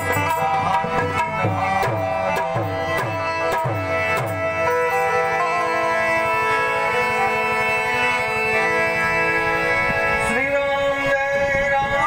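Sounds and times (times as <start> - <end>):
harmonium chord: 0.0 - 12.0.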